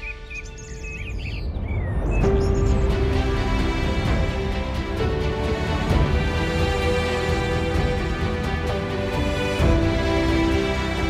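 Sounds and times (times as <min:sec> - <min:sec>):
birds chirping: 0:00.0 - 0:11.0
soft background music: 0:00.0 - 0:11.0.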